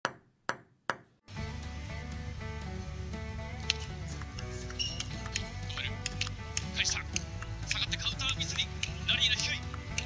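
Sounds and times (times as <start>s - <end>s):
background music with bass line: 1.3s - 10.0s.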